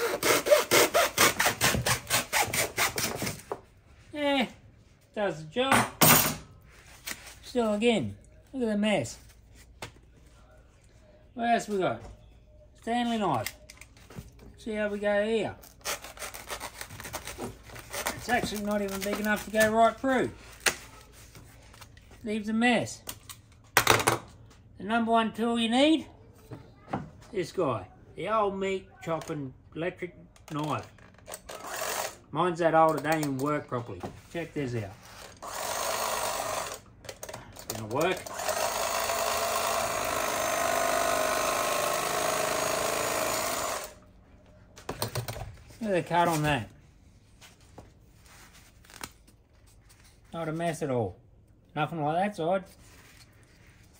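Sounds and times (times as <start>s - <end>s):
knife blade sawing through foam: 0.0s - 3.1s
electric carving knife buzzing: 35.4s - 36.8s, 38.3s - 44.0s.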